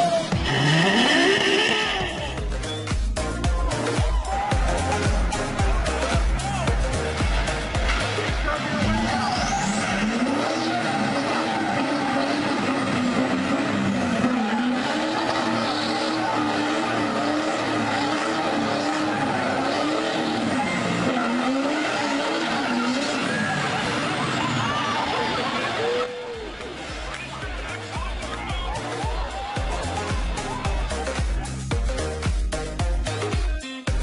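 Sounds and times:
diesel engine at high revs: 0.0 - 2.7, 4.6 - 30.6
tyres spinning on pavement: 4.6 - 30.9.

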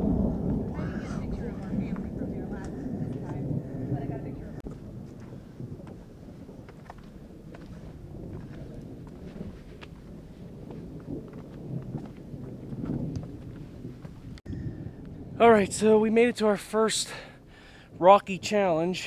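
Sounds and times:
wind on microphone: 0.0 - 18.9
footsteps on rocky trail: 4.6 - 14.4.

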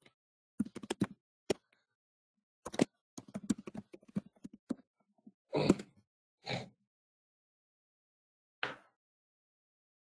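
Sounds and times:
keyboard keys clicking: 0.6 - 1.6, 2.6 - 4.8.

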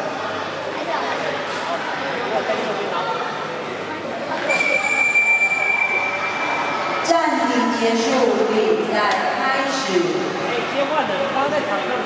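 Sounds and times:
referee's whistle blast: 4.5 - 6.8.

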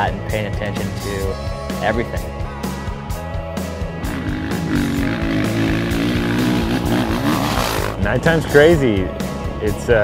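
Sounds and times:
background music: 0.0 - 10.0
dirt bike engine running: 4.0 - 8.2.

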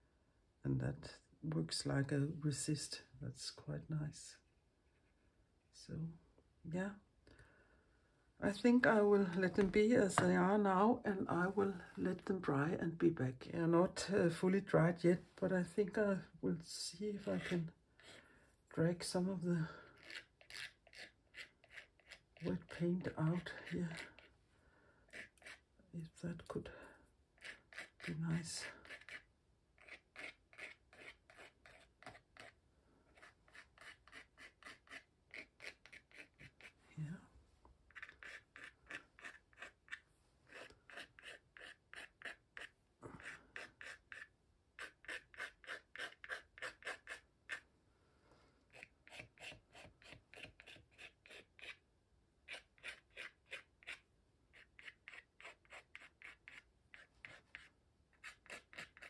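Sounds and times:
pointed tool scratching paper: 17.1 - 18.2, 19.9 - 24.3, 25.1 - 25.7, 27.4 - 36.8, 37.9 - 47.6, 48.7 - 51.8, 52.5 - 59.0.

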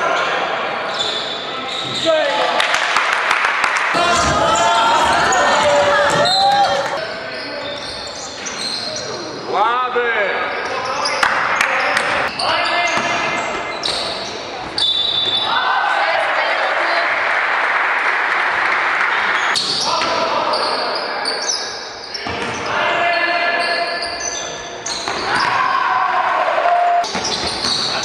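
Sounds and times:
sneaker squeaks: 0.9 - 2.3, 4.2 - 9.4, 10.4 - 15.6, 19.4 - 25.6, 27.0 - 28.0
players and spectators talking: 3.9 - 25.6.

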